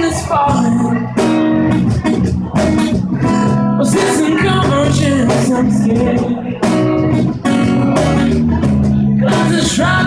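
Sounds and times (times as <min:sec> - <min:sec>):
person singing: 0:00.0 - 0:01.5, 0:03.2 - 0:06.9, 0:09.2 - 0:10.0
bass guitar: 0:00.0 - 0:10.0.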